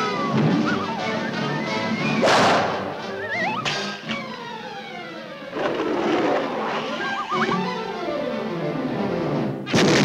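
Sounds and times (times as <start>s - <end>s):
orchestral cartoon music: 0.0s - 9.6s.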